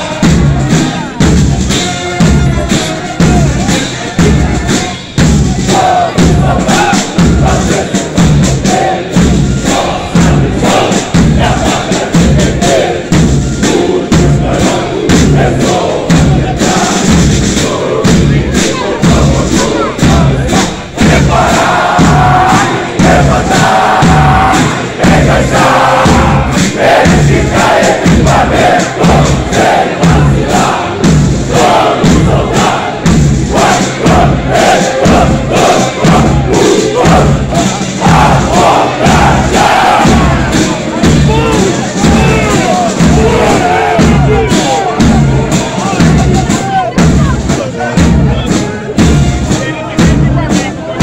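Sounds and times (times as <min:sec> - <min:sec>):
soldiers chanting in unison: 0:00.0 - 0:51.0
steady marching beat: 0:00.0 - 0:51.0.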